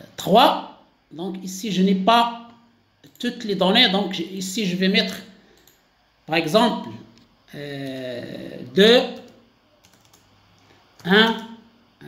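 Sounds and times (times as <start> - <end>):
computer keyboard keystrokes: 9.2 - 10.3.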